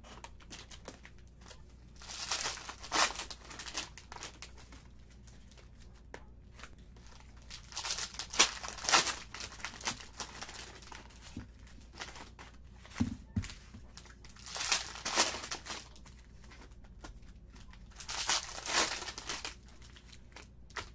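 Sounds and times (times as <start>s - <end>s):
plastic wrapper tearing and crinkling: 0.1s - 5.8s, 6.6s - 12.4s, 13.9s - 16.8s, 17.5s - 20.9s.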